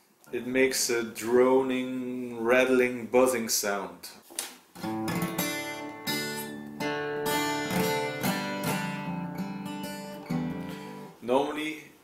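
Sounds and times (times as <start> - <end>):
string buzzing against frets: 4.8 - 11.1
acoustic guitar strummed: 4.8 - 11.2.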